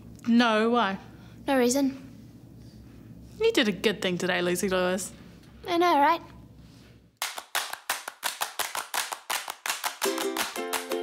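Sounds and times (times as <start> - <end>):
rhythmic hand claps: 7.2 - 11.0.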